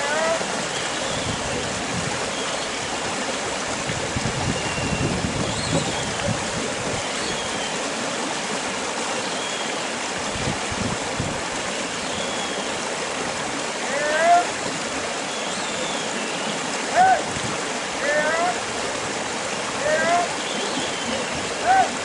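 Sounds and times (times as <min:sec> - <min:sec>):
wind on microphone: 0:00.0 - 0:08.0, 0:10.1 - 0:13.6, 0:17.0 - 0:17.9, 0:18.6 - 0:22.0.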